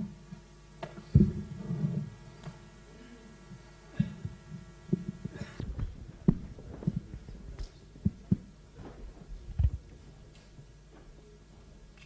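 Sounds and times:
microphone handling thumps: 0.8 - 2.6, 3.5 - 10.2.

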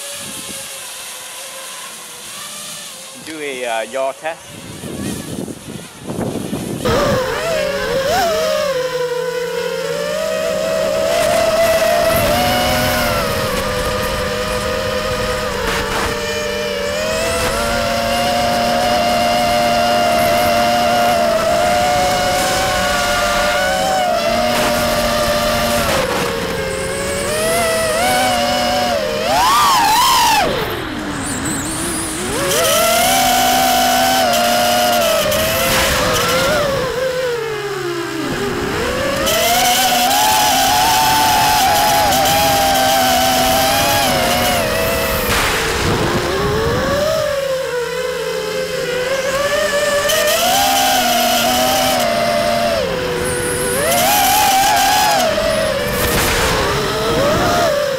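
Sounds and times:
quadcopter motors buzzing whine: 0.0 - 57.9.

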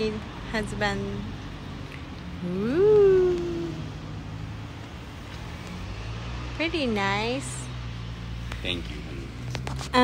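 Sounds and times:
person saying oooh: 2.4 - 3.9.

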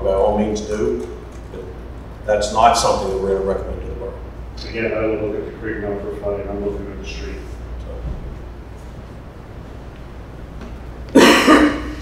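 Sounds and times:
person coughing: 11.1 - 12.0.

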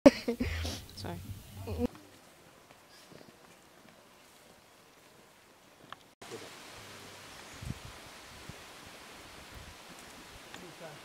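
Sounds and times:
outdoor background hiss: 0.1 - 11.0
dull low thumps: 0.4 - 1.9.

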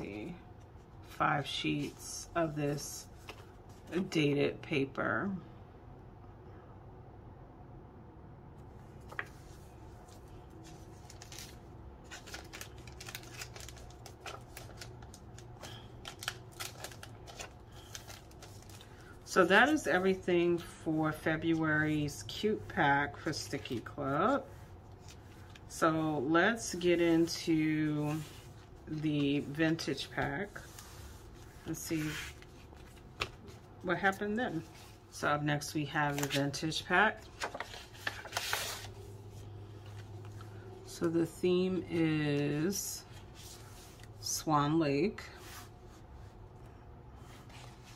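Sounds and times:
paper sheets rustling on desk: 0.1 - 4.2, 9.0 - 20.2, 26.4 - 35.1, 36.0 - 40.4
paper rustling and tapping: 32.7 - 33.6, 37.4 - 38.9.

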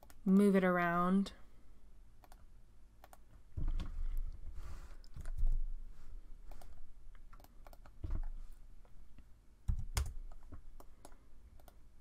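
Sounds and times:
keyboard typing: 0.0 - 0.2, 5.0 - 5.6, 6.5 - 8.3, 9.7 - 11.8
mouse clicks: 2.2 - 2.4, 3.0 - 3.2, 6.5 - 8.3, 9.7 - 11.8.

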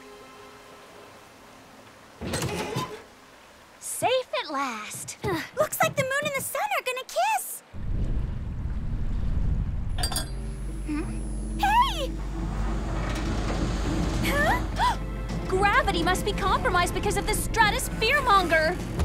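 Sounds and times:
low rumble: 7.8 - 18.0
dramatic background music: 10.3 - 19.0.

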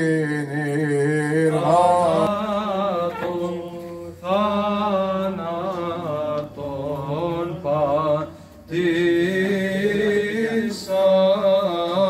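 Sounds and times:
man chanting a hymn: 0.0 - 12.0.

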